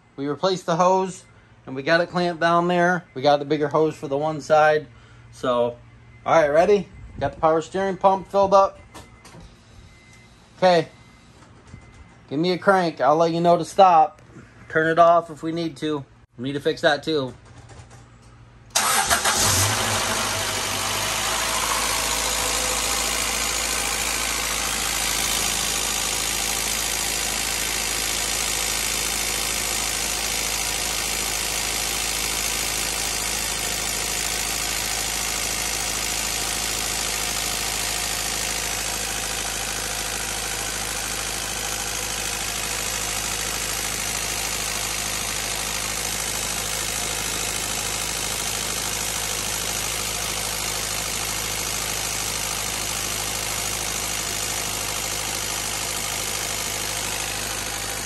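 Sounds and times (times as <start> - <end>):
car engine starting and idling: 18.7 - 58.0.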